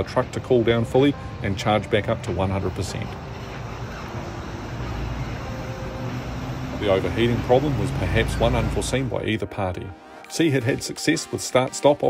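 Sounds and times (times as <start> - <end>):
tyre and road noise: 0.0 - 9.4.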